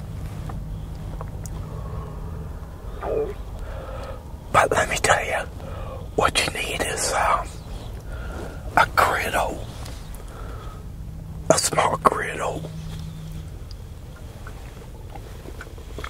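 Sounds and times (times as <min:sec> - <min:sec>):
steady low hum: 0:00.0 - 0:16.0
man half-whispering: 0:04.5 - 0:10.1, 0:11.5 - 0:12.8.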